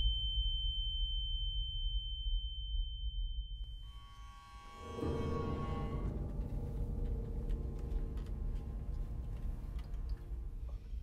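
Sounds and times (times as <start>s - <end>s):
high-pitched ringing tone: 0.0s - 6.2s
low rumble: 0.2s - 11.0s.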